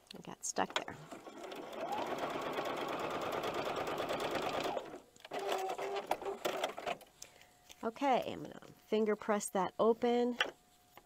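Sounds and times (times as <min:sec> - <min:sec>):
sewing machine stitching: 0:00.7 - 0:07.0.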